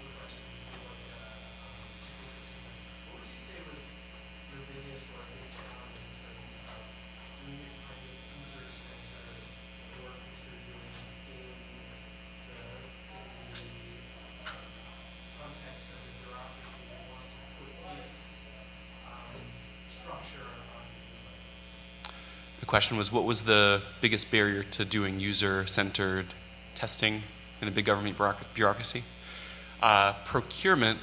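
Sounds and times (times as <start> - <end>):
faint distant speech: 0.0 - 22.0
electrical mains hum: 0.0 - 31.0.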